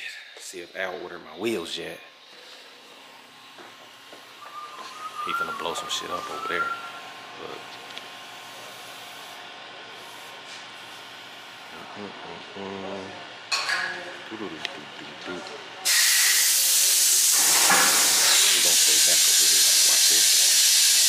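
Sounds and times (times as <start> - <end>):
pressurised gas hissing: 15.8 - 21.0.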